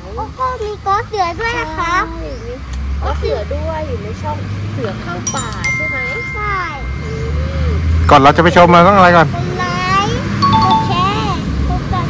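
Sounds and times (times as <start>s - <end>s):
passing traffic rumble: 0.0s - 12.0s
electronic chime tones: 5.3s - 7.7s, 10.4s - 11.2s.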